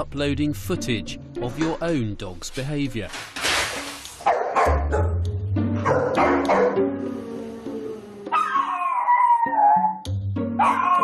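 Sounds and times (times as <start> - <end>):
background music: 0.0 - 11.0
dog barking: 4.2 - 5.2, 5.8 - 6.8, 10.6 - 11.0.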